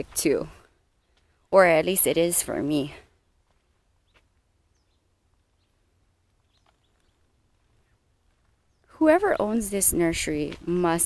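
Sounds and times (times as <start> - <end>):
faint bird chirps: 4.0 - 9.6.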